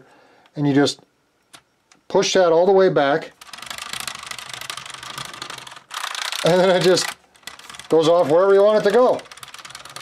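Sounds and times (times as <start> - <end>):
wooden gears clicking rapidly: 3.3 - 10.0.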